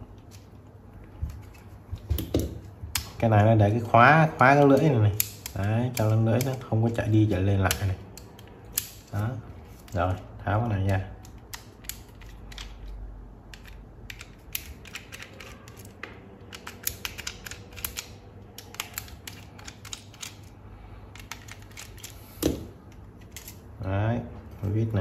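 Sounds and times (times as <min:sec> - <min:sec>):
screwdriver clicking on plastic: 0:04.6 - 0:06.7.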